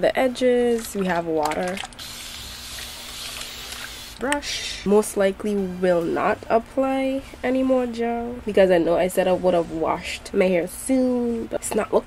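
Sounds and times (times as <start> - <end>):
spray bottle misting: 2.0 - 4.3.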